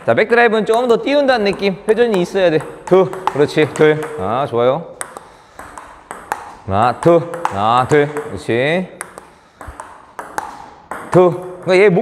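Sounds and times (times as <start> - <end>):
table tennis ball clicks: 0.6 - 4.3, 5.0 - 11.8.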